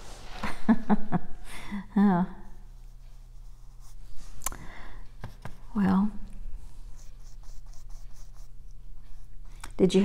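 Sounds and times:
paintbrush strokes on fabric: 2.7s - 4.4s, 6.6s - 9.6s.

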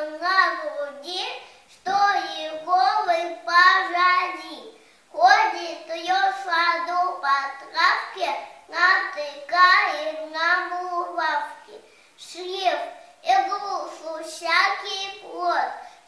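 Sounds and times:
girl reciting a poem: 0.0s - 16.0s.

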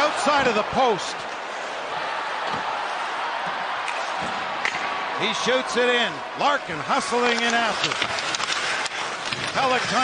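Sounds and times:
arena crowd noise: 0.0s - 10.0s
hockey sticks and puck knocks: 3.8s - 4.9s, 6.9s - 10.0s.

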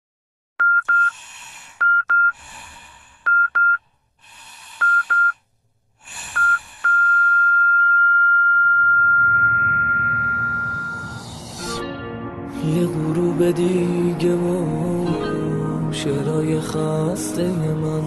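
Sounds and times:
heart monitor beeps: 0.6s - 1.1s, 1.8s - 2.4s, 3.3s - 3.8s, 4.8s - 5.4s, 6.3s - 11.2s
laboured breathing: 1.0s - 7.6s
flatline tone: 6.4s - 11.6s
soft music: 11.1s - 18.0s.

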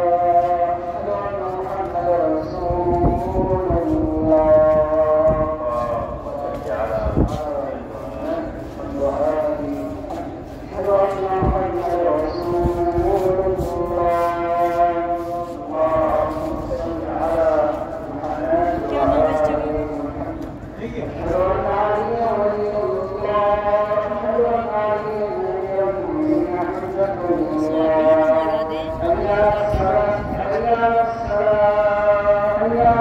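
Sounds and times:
person chanting: 0.0s - 33.0s.

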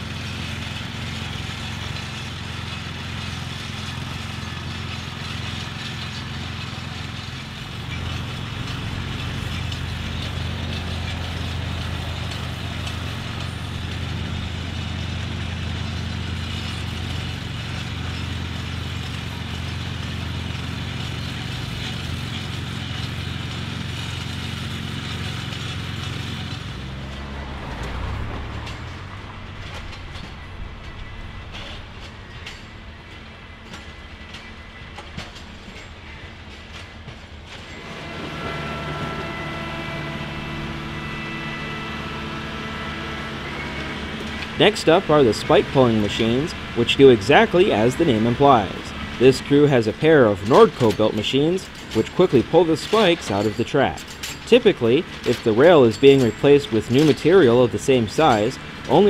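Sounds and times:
grinding wheel on steel rail: 0.0s - 59.0s
petrol engine grinder running: 0.0s - 59.0s.

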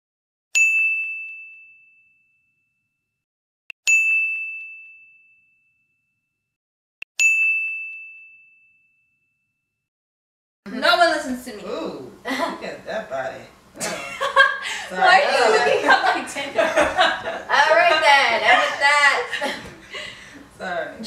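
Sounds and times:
bell-like ding: 0.6s - 3.0s, 3.8s - 6.3s, 7.2s - 9.7s.

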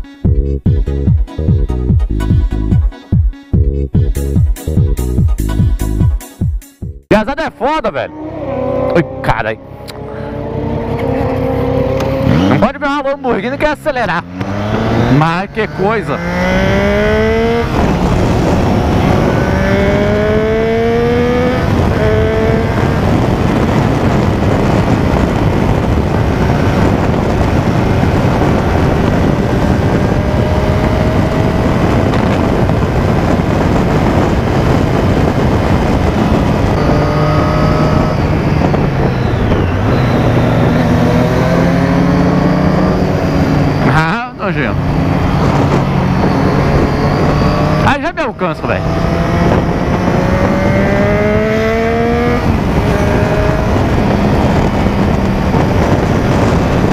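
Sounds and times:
motorcycle engine accelerating: 7.1s - 56.9s
wind rush on microphone: 7.7s - 56.9s.

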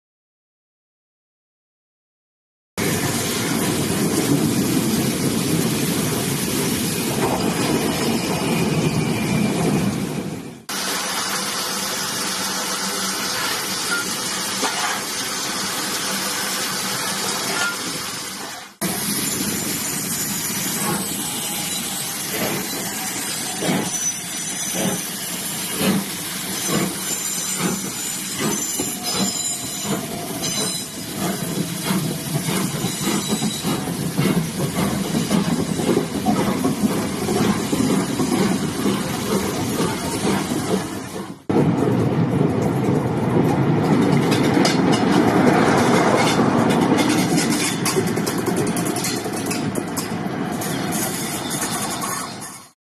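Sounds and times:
wheels rumbling on rail: 2.8s - 52.8s
steam locomotive exhaust beats: 18.8s - 50.2s.

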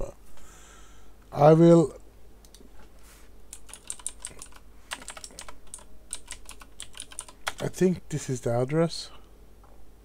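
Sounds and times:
typing on computer keyboard: 3.5s - 7.6s.

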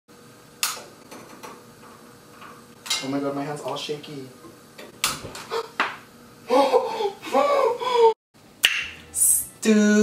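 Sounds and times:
man's wavering voice: 9.2s - 10.0s.

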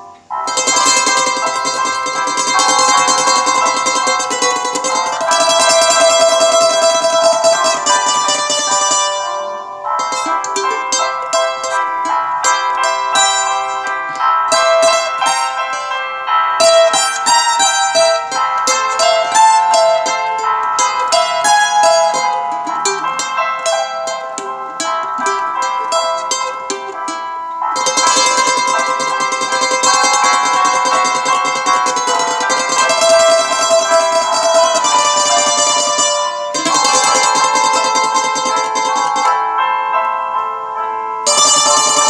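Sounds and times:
plucked string instrument melody: 0.0s - 42.0s.

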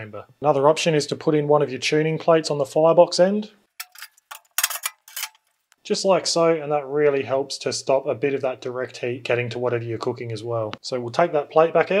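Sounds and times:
steel plate clinking on metal grate: 3.8s - 5.4s.

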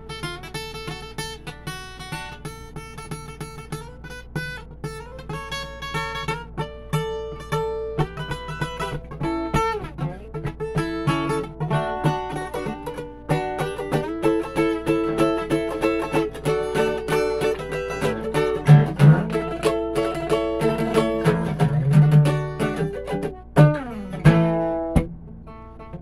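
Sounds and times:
acoustic guitar picking and strumming: 0.0s - 26.0s
steady low hum: 0.0s - 26.0s.

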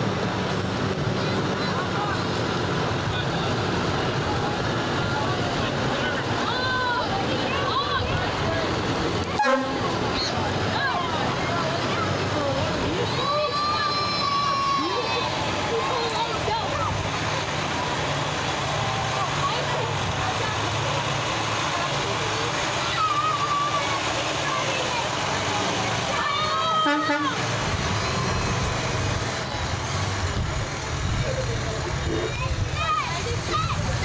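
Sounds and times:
crowd talking: 0.0s - 34.0s
fire truck engines running: 0.0s - 34.0s
tyres hissing on wet street: 0.0s - 34.0s.

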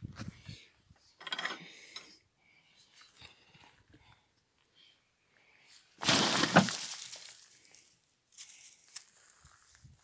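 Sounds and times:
soil sliding off trailer bed: 6.0s - 7.4s.

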